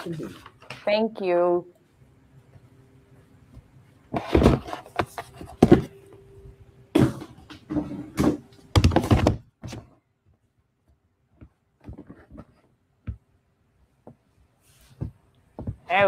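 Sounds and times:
faint steady hum: 0:00.0 - 0:16.0.

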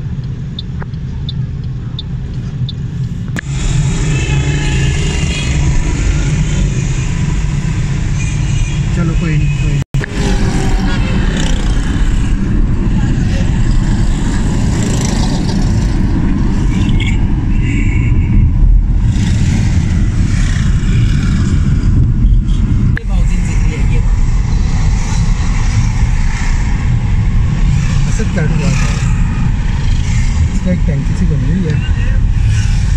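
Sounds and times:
car engine and tyres rumbling: 0:00.0 - 0:32.9
passing traffic: 0:00.0 - 0:32.9.

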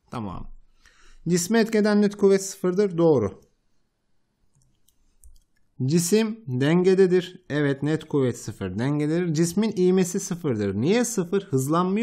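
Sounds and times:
man speaking: 0:00.0 - 0:00.6, 0:01.2 - 0:03.6, 0:05.8 - 0:12.0.

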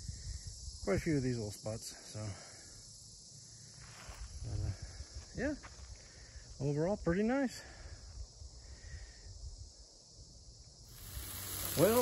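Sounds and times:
steady high hiss: 0:08.7 - 0:12.0.

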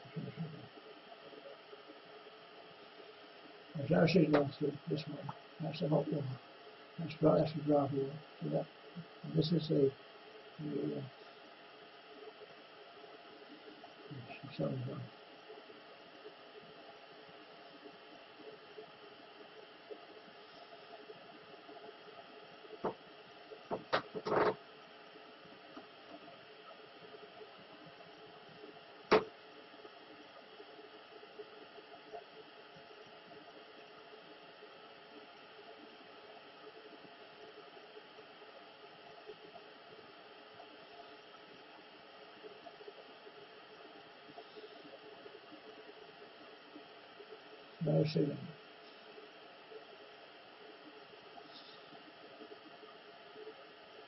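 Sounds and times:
faint hum: 0:00.0 - 0:54.0
steady low hiss: 0:00.0 - 0:54.0.

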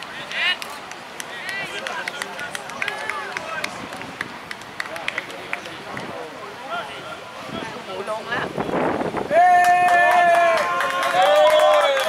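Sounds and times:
distant people talking and calling: 0:00.0 - 0:12.0.

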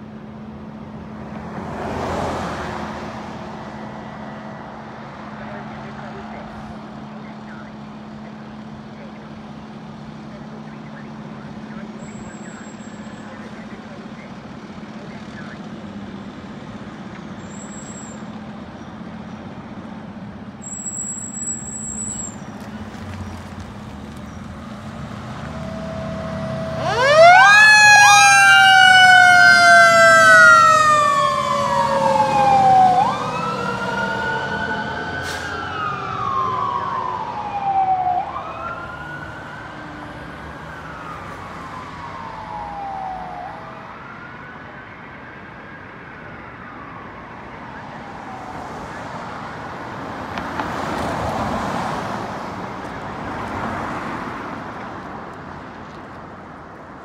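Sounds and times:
fire truck siren wailing: 0:00.0 - 0:16.8, 0:24.6 - 0:53.5
fire truck engine running: 0:03.0 - 0:46.0.

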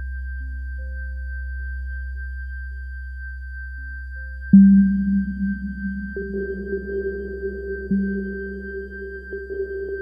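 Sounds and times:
low synthesizer drone: 0:00.0 - 0:10.0
grainy synth note: 0:04.6 - 0:10.0.

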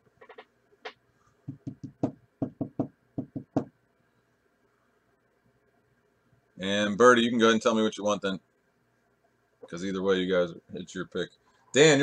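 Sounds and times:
knocks on hard surface: 0:01.5 - 0:03.7.

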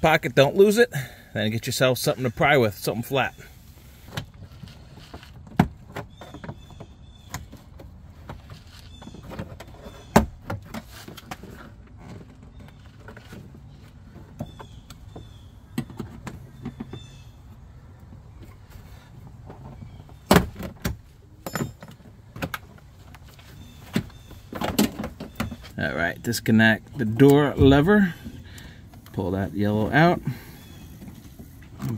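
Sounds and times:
handling noise: 0:04.0 - 0:31.9.

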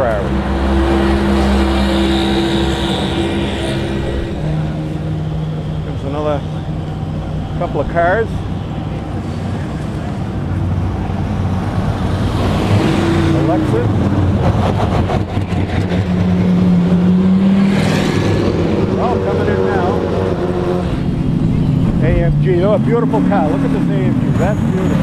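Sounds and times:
race car engines at low revs: 0:00.0 - 0:25.0.

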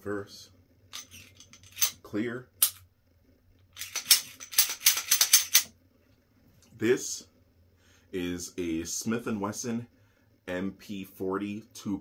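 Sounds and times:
pistol slide clicking and clacking: 0:01.0 - 0:02.0, 0:03.8 - 0:05.7.

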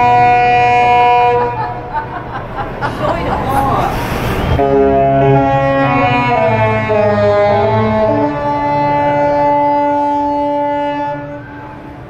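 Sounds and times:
ship horn chord: 0:00.0 - 0:02.0, 0:04.5 - 0:12.0.

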